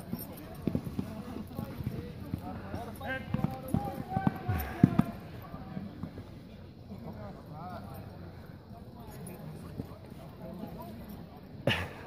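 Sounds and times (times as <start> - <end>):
distant shouting voices: 0.1 - 6.2.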